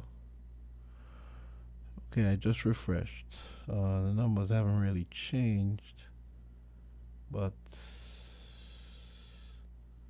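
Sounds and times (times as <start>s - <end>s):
faint low hum: 0.0s - 10.0s
person breathing out: 7.7s - 9.7s.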